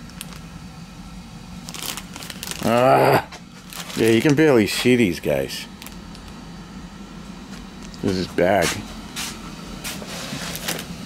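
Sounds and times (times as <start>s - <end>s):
plastic bag crinkling: 0.0s - 0.4s, 1.6s - 4.7s.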